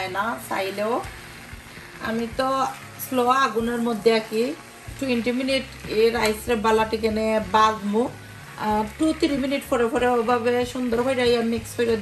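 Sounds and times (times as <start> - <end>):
woman speaking: 0.0 - 1.1, 2.0 - 12.0.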